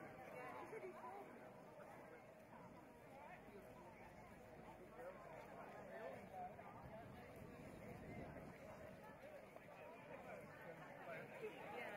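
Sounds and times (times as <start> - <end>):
faint people talking: 0.0 - 11.9.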